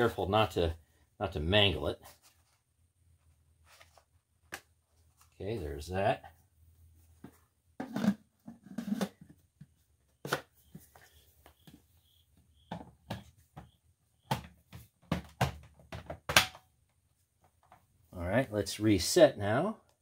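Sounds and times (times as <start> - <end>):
plastic parts clicking and knocking: 12.7 - 16.7.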